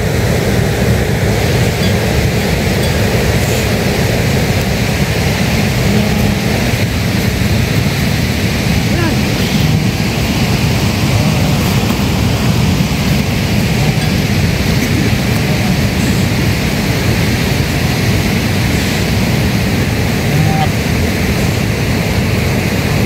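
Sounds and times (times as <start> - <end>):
loud rushing noise: 0.0 - 23.0
sheep and goats calling: 1.0 - 21.8.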